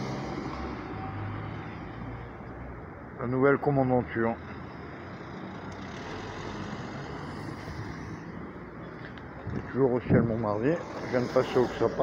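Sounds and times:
low engine rumble of traffic: 0.0s - 12.0s.

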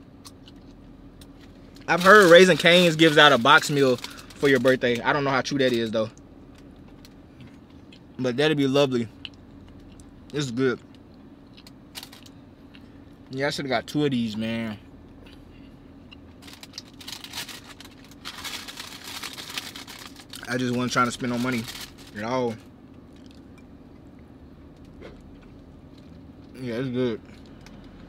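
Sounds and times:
low steady hum: 0.0s - 28.0s
person chewing: 12.6s - 13.0s, 23.2s - 26.3s.

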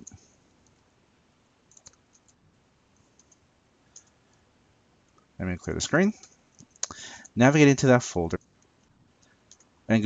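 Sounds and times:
faint keyboard keystrokes: 1.7s - 4.4s.

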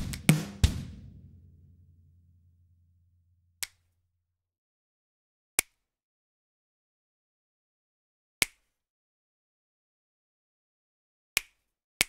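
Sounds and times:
electronic track bass: 0.0s - 1.1s.

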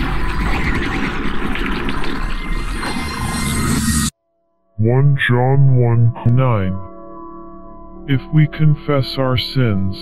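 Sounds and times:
textured noisy layer: 0.0s - 4.1s.

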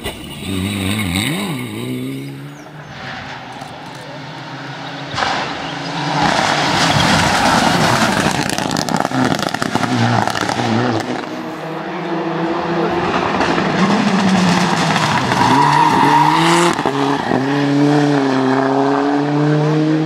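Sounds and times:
rally car engine at full throttle: 0.0s - 20.0s
second car engine accelerating: 0.0s - 20.0s.

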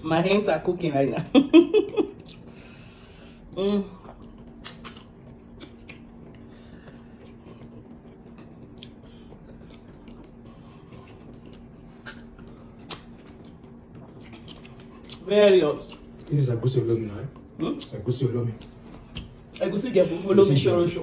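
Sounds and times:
chewing with wet mouth clicks: 2.1s - 2.5s, 4.0s - 16.3s, 17.3s - 19.7s.

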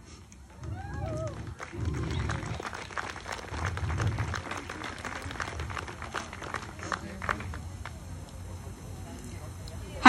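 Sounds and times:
crowd clapping: 0.4s - 8.1s.

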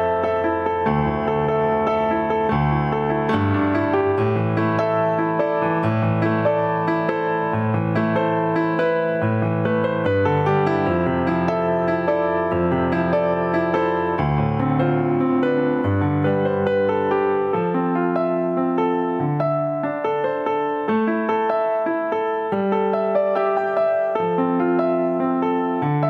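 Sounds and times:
solo piano music: 0.0s - 26.0s.

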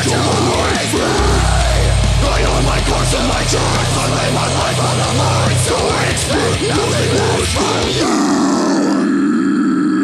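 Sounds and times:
harsh scream growl: 0.0s - 10.0s.

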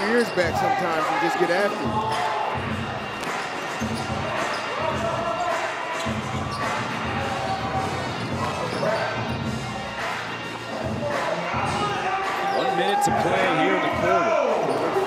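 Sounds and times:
crowd noise: 0.0s - 15.0s.

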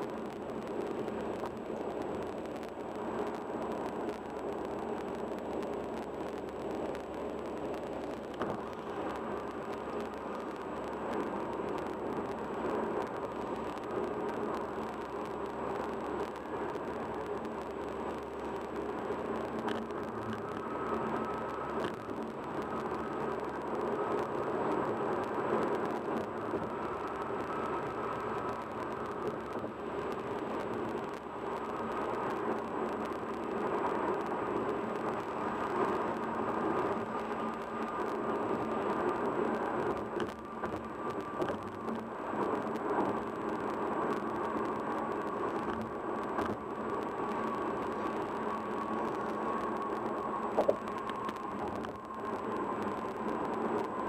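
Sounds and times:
car road noise at highway speed: 0.0s - 54.0s.

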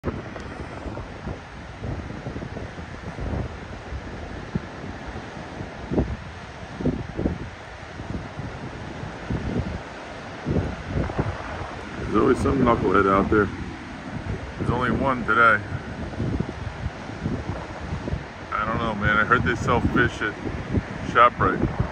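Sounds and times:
surf breaking on beach: 0.0s - 21.9s
wind buffeting microphone: 0.0s - 21.9s.

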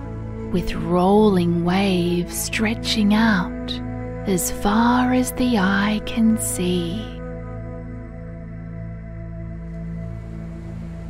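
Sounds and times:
soft ambient music with held tones: 0.0s - 11.0s
ocean waves: 9.8s - 11.0s.

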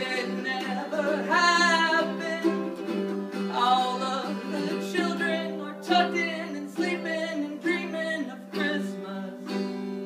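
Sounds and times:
man singing: 0.0s - 9.8s
acoustic guitar: 0.0s - 10.0s.

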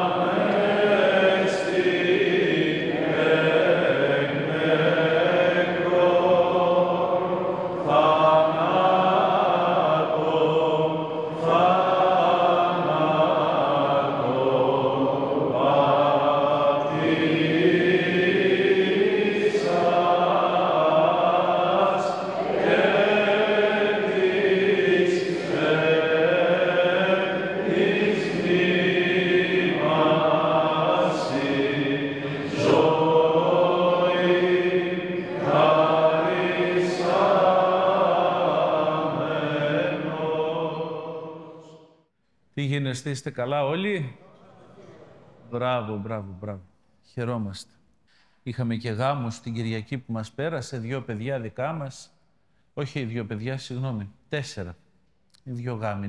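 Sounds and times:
voices chanting slow phrases: 0.0s - 41.9s.

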